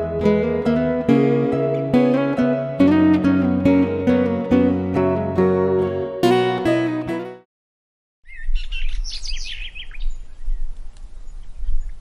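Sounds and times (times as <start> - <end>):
songbirds chirping: 8.2 - 12.0.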